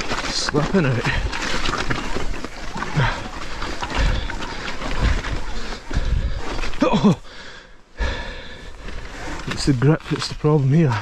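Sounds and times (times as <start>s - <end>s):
rider grunting: 0.0s - 9.6s
bike tyres crunching over rocks: 0.0s - 11.0s.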